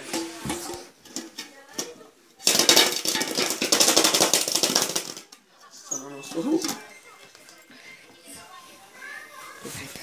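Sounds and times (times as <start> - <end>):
metal tin rattling: 0.0 - 5.4.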